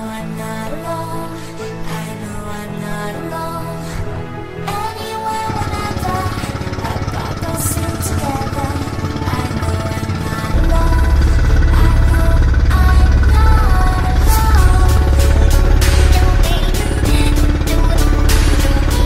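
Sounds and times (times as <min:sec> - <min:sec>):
background music with melody: 0:00.0 - 0:19.0
boat engine rumbling: 0:04.0 - 0:19.0.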